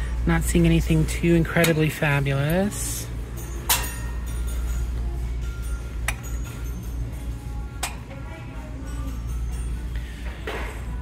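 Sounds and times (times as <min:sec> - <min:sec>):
faint background music: 0:00.0 - 0:11.0
low steady hum: 0:00.0 - 0:11.0.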